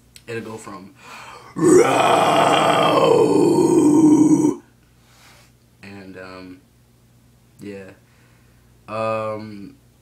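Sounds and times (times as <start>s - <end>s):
man's low growled scream: 1.6s - 4.6s.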